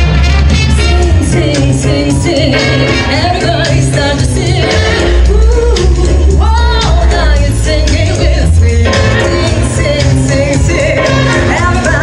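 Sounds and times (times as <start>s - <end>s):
woman singing with vibrato: 0.7s - 12.0s.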